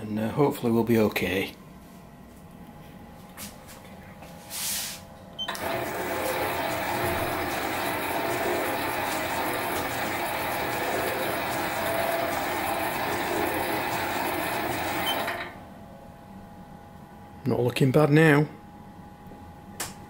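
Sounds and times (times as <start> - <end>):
metal lathe running: 5.5 - 15.6.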